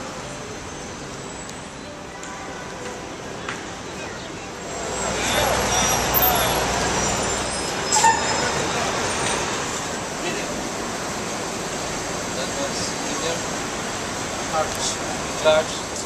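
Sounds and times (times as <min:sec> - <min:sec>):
road traffic passing: 0:00.0 - 0:16.0.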